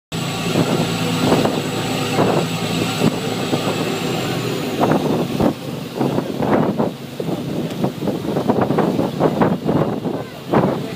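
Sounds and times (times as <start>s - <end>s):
boat engine drone: 0.1s - 10.9s
wind buffeting microphone: 0.2s - 10.9s.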